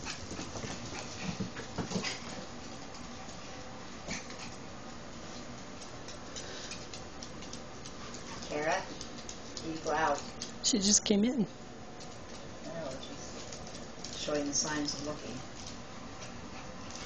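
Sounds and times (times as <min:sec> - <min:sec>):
dog claws clicking on hardwood floor: 0:05.4 - 0:10.6, 0:12.0 - 0:15.8.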